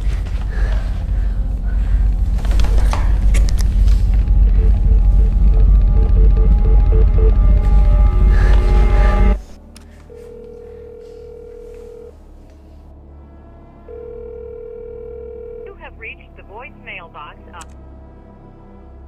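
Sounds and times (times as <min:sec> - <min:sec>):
loud deep music: 0:00.2 - 0:09.6
telephone ringback tone: 0:10.1 - 0:12.2, 0:13.9 - 0:15.7.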